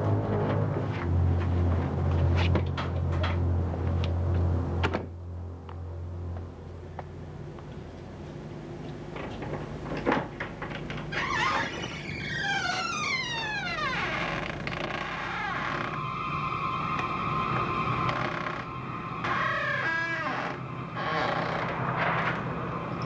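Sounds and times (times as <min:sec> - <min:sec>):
eerie synthesizer music: 0:12.3 - 0:23.0.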